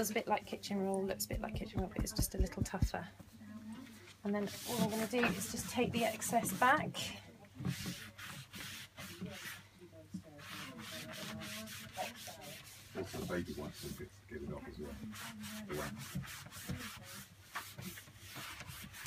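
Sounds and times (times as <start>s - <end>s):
cloth rubbing on wood cabinet: 1.2s - 3.0s, 4.4s - 7.0s, 7.6s - 9.6s, 10.4s - 19.0s.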